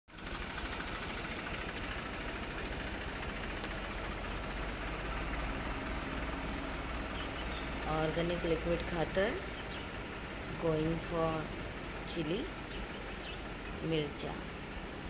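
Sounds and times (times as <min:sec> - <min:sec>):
diesel tractor engine running: 0:00.1 - 0:15.0.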